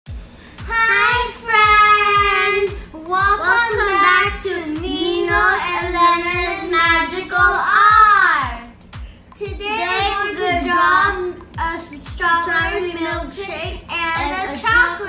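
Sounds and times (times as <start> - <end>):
kick drum beat: 5.8 - 14.9.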